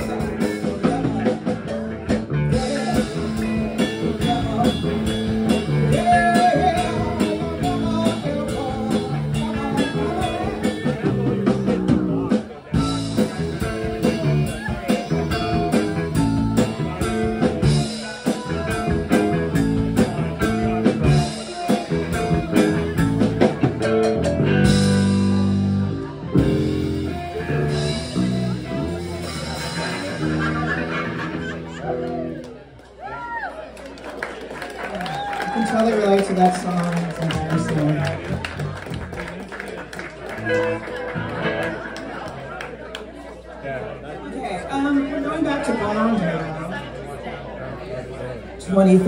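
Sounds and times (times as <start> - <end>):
drum kit: 0.0 - 32.4
electric guitars: 0.0 - 33.0, 35.0 - 43.2.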